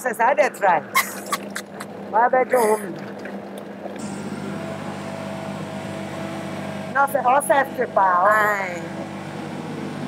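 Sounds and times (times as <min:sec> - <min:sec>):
blender running: 0:04.0 - 0:10.0.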